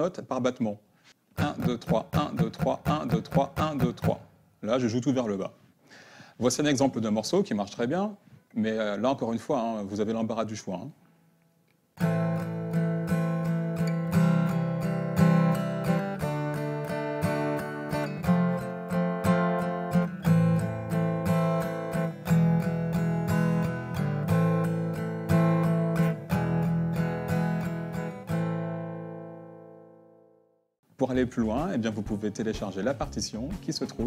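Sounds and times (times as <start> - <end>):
acoustic guitar strumming chords: 1.4 - 4.3, 12.0 - 30.4.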